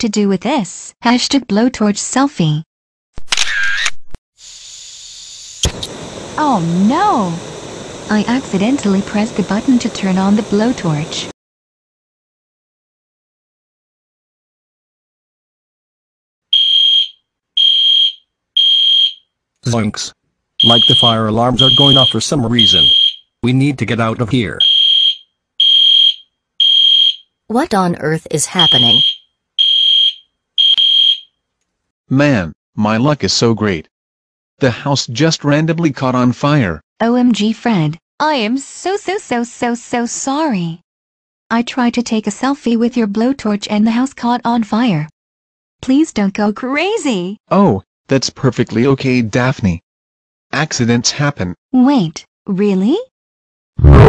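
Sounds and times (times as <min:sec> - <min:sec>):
blowtorch flame hissing: 0:04.4 - 0:11.3
fire alarm beeping: 0:16.5 - 0:19.2, 0:20.6 - 0:23.2, 0:24.6 - 0:27.2, 0:28.5 - 0:31.3.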